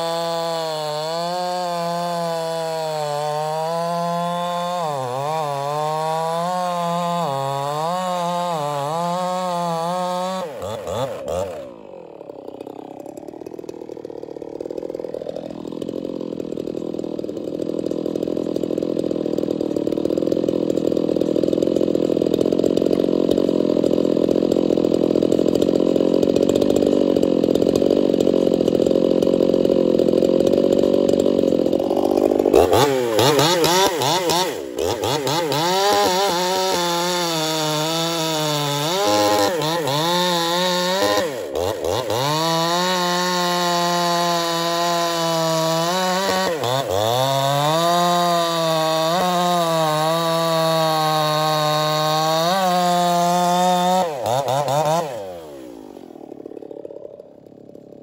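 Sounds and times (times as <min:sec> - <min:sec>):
chainsaw cutting log: 0:00.0 - 0:58.0.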